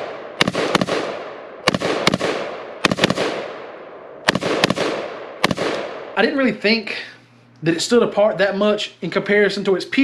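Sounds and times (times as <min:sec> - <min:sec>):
rifle shots echoing: 0:00.0 - 0:06.4.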